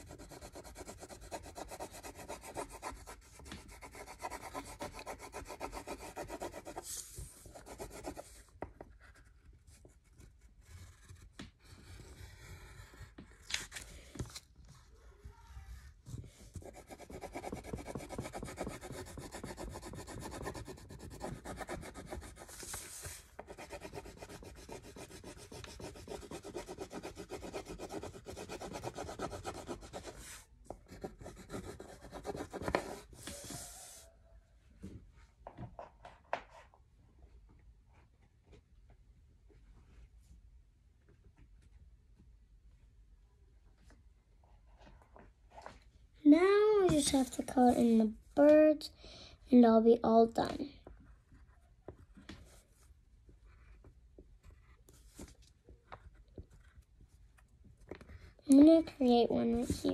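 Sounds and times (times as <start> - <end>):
pencil scribbling on paper: 0.0 - 13.1, 16.4 - 34.0
paper rustling: 22.5 - 23.4.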